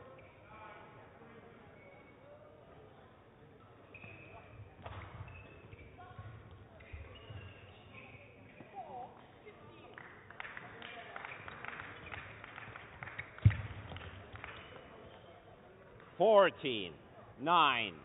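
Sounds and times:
shoes squeaking on court floor: 0:01.7 - 0:02.4, 0:03.6 - 0:09.1, 0:13.1 - 0:13.6.

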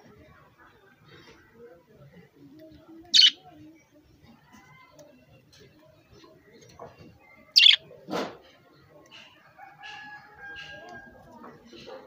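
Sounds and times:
budgerigar chirping: 0:03.2 - 0:03.4, 0:07.6 - 0:07.8.

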